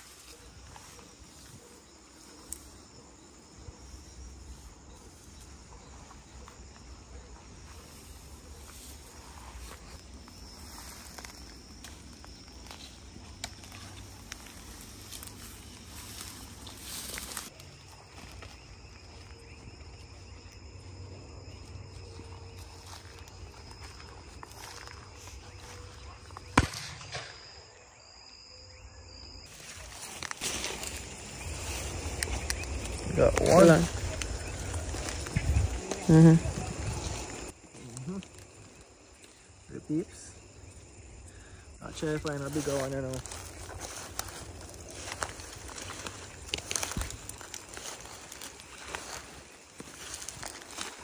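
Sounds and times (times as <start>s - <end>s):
footsteps rustling through grass: 0.0s - 27.3s, 29.4s - 39.7s, 41.8s - 51.0s
insects chirping: 0.0s - 51.0s.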